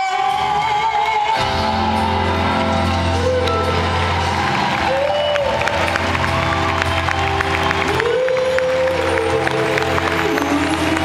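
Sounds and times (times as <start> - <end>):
live band music: 0.0 - 11.0
audience clapping: 0.9 - 11.0.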